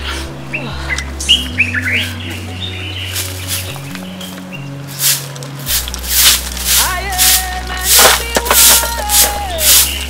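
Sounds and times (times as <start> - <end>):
low sustained tones: 0.0 - 10.0.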